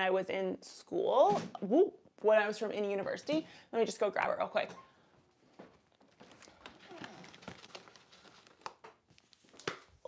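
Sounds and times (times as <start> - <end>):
rustling: 5.4 - 9.9.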